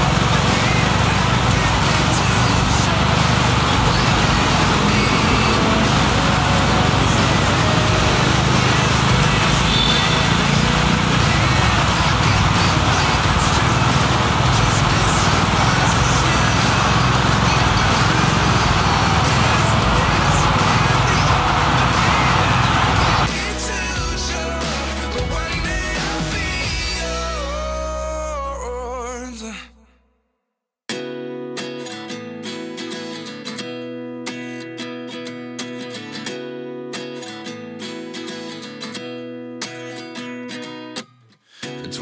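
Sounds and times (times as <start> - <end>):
traffic: 0.0 - 23.4
motorcycle engine: 0.0 - 27.2
background music: 0.0 - 29.6.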